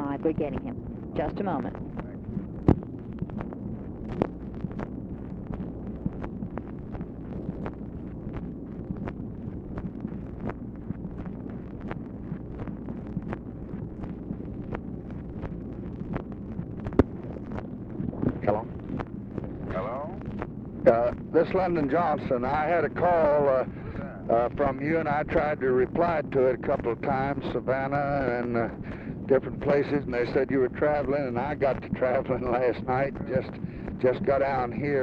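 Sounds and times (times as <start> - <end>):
crackles and pops: 0.0 - 35.0
steady hiss and hum: 0.0 - 35.0.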